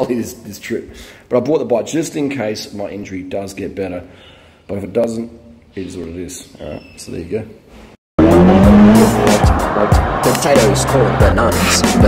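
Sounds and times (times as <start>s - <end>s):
hip hop music with heavy beat: 8.2s - 12.0s
sports car engine revving: 8.2s - 12.0s.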